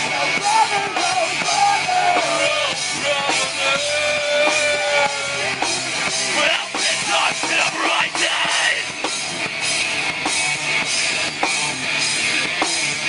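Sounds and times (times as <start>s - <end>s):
bending lead guitar line: 0.0s - 13.0s
rock band playing: 0.0s - 13.0s.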